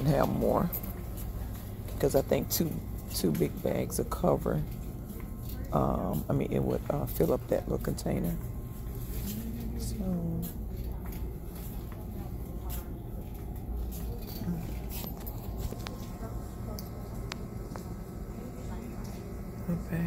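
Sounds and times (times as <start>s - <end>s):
steady low hum: 0.0s - 20.0s.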